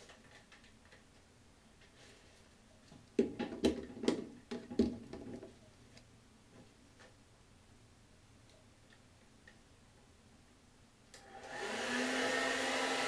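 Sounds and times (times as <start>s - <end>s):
objects knocking and clattering: 3.2s - 5.6s.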